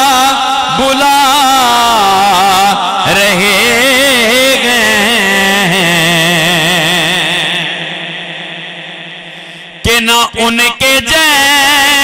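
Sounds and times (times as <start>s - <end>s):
man singing into a microphone: 0.0s - 12.0s.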